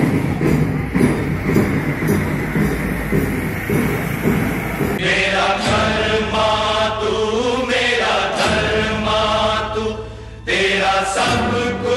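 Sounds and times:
steady low drone: 0.0s - 11.9s.

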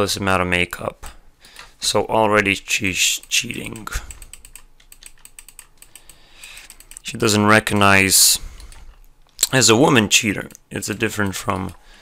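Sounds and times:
computer input device clicks and taps: 3.7s - 7.0s.

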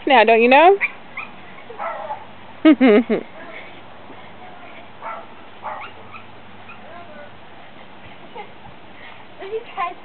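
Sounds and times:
puppies yipping: 0.8s - 2.3s, 5.0s - 7.3s.

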